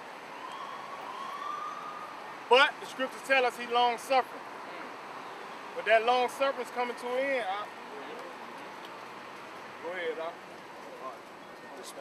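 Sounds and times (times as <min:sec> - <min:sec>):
faint siren wailing: 0:00.0 - 0:03.2
traffic: 0:00.0 - 0:12.0.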